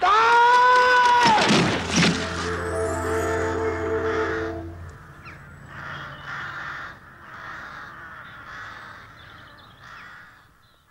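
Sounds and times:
closing music: 0:01.5 - 0:05.9
crows cawing: 0:05.2 - 0:10.6.

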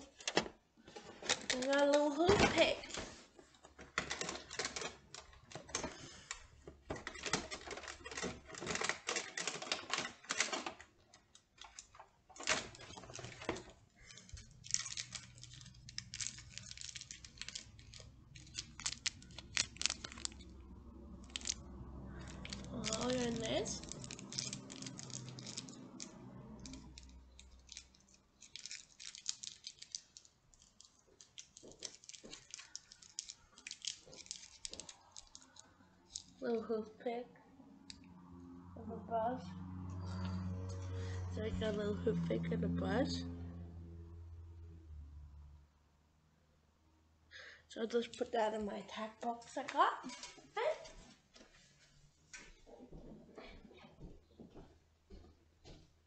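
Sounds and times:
cardboard and plastic crackling: 0:00.0 - 0:36.5
plastic packaging clicks and crinkles: 0:00.0 - 0:36.5.

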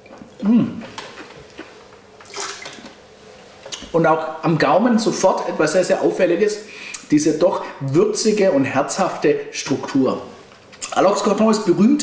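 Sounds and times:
person speaking: 0:00.4 - 0:01.3, 0:03.7 - 0:12.0
breathy hiss: 0:06.6 - 0:07.8.

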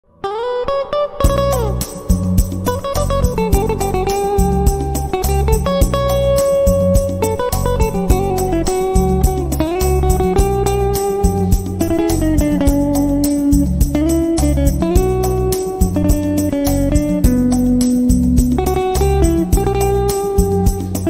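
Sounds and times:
electric guitar lead melody: 0:00.0 - 0:21.0
backing track with bass pulse: 0:01.2 - 0:21.0.

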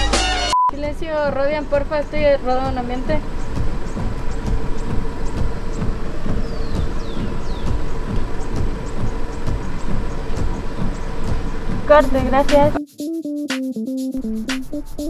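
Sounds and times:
low rumble inside car: 0:00.8 - 0:12.7.

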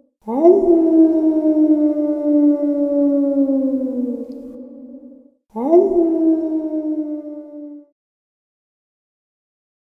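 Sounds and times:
long wailing note: 0:05.6 - 0:07.9.

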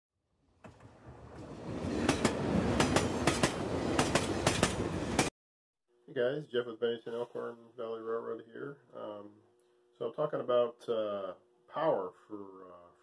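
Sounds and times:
train rumble: 0:00.6 - 0:05.3
train wheels clickety-clack: 0:00.6 - 0:05.3.

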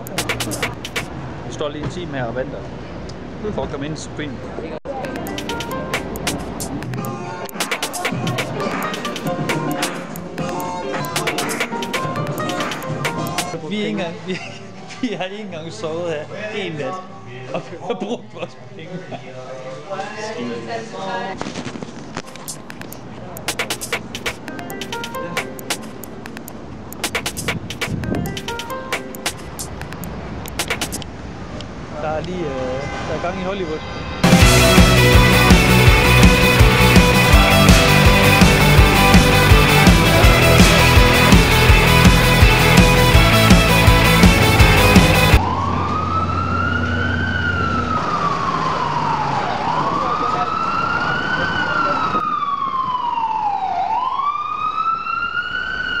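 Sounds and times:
sharp clicks: 0:00.0 - 0:01.1, 0:05.0 - 0:13.5, 0:22.2 - 0:31.1
street traffic: 0:00.0 - 0:13.7, 0:21.4 - 0:53.0
ambulance siren wailing: 0:34.2 - 0:56.0.

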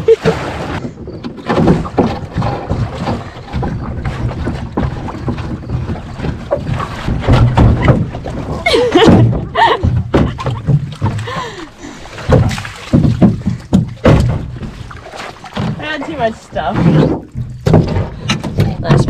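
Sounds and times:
gear knocking and rustling: 0:00.7 - 0:19.0.

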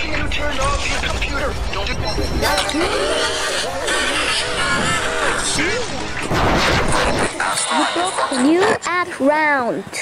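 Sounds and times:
many overlapping voices: 0:00.0 - 0:10.0
pitch-sliding sound effects: 0:01.7 - 0:08.8
crash-like noise: 0:05.7 - 0:07.8.

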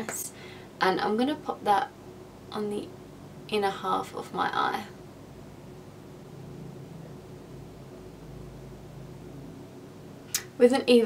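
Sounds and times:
low hum: 0:01.9 - 0:10.3.

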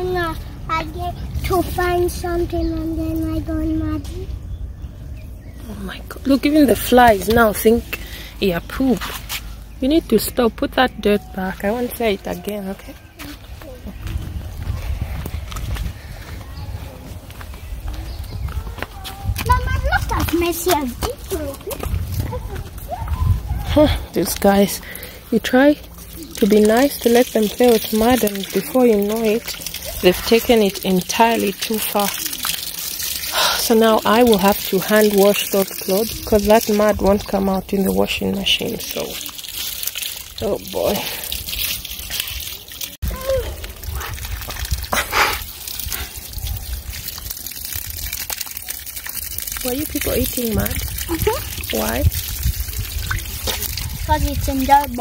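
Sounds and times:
hose water splashing into mud: 0:00.0 - 0:03.6, 0:19.2 - 0:55.0.

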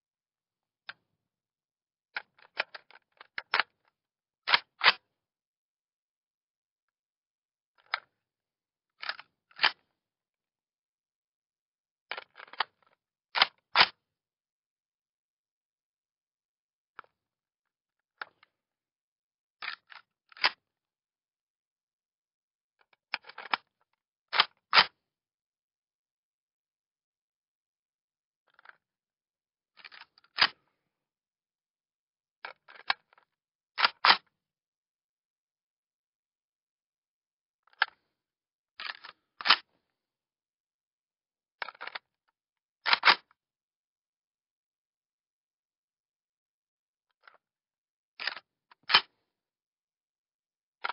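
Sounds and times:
metallic magazine rattles: 0:41.6 - 0:42.0.

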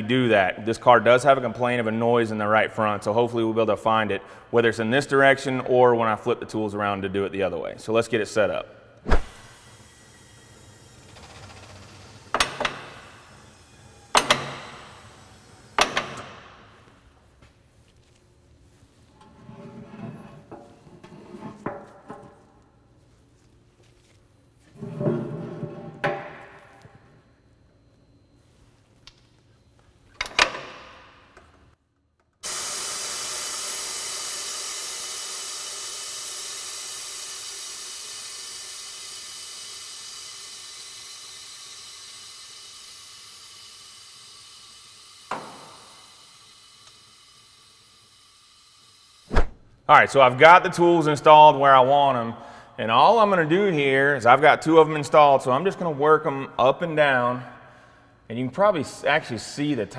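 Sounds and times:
compressed air hissing: 0:09.0 - 0:17.2.

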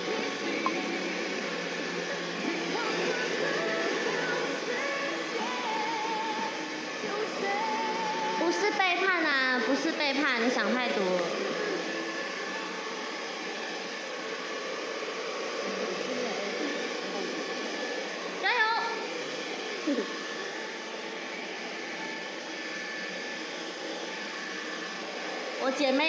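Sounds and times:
hair dryer running: 0:00.0 - 0:26.0.

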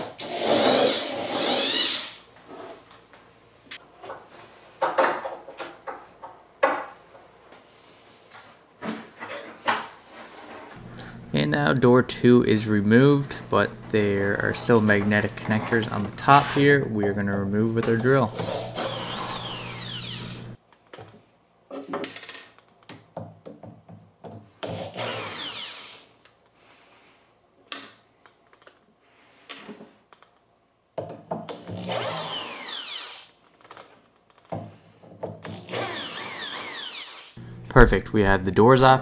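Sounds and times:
power drill running: 0:00.3 - 0:02.2, 0:18.4 - 0:20.6, 0:24.9 - 0:26.0, 0:31.8 - 0:33.3, 0:35.6 - 0:37.6.

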